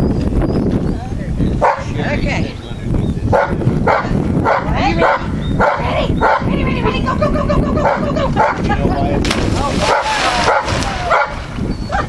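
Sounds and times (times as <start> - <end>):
dog barking: 1.6 - 1.9, 3.3 - 6.5, 7.8 - 8.6, 9.9 - 12.0.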